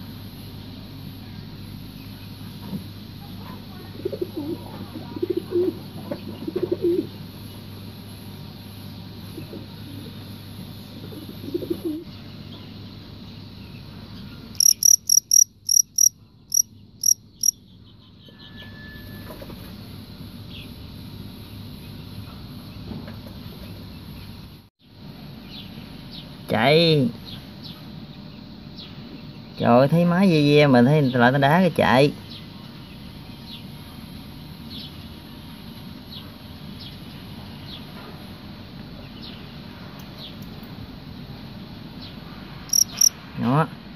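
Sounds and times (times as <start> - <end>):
cricket chirping: 14.5 - 17.6, 42.7 - 43.2.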